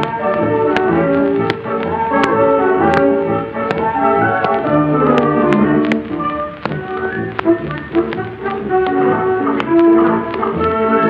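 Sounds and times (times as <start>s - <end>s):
orchestra playing held notes: 0.0s - 7.8s
sharp percussive taps: 0.0s - 11.0s.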